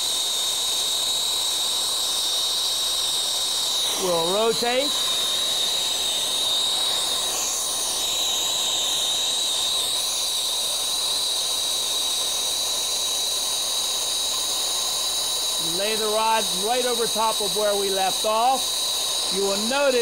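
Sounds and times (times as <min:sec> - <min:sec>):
steady high whistle: 0:00.0 - 0:20.0
torch flame hissing: 0:00.0 - 0:20.0.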